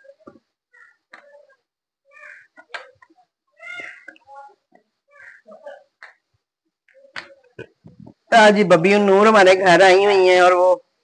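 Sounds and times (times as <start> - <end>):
small child fussing and crying: 0.7 - 5.8.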